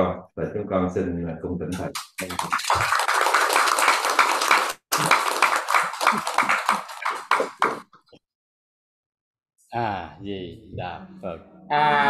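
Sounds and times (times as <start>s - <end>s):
people applauding: 1.8s - 7.8s.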